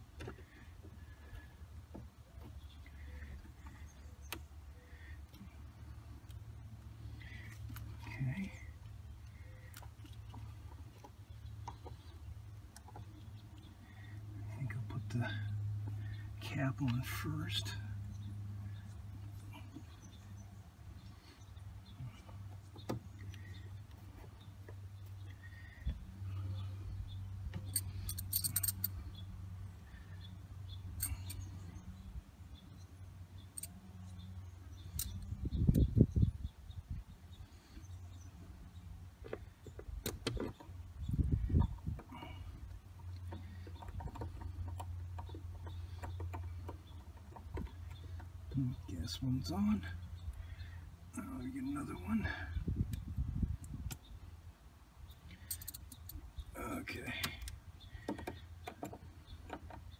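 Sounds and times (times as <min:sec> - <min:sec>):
steady low hum: 0:00.0 - 0:59.9
metallic clicks of hand tools: 0:55.4 - 0:56.2.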